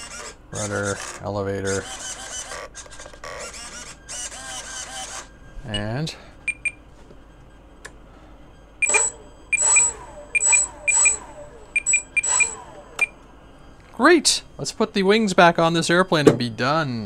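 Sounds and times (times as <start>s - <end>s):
electric motors whirring: 0.0s - 5.5s, 7.3s - 14.0s
faint short blips: 8.8s - 13.3s.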